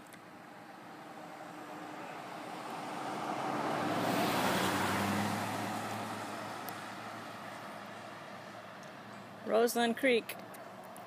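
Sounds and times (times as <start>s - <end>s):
vehicle driving past: 0.6s - 9.4s.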